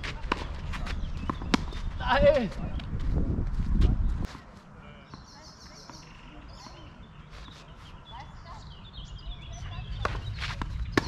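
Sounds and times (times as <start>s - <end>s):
birds chirping: 0.0s - 2.9s, 3.9s - 11.0s.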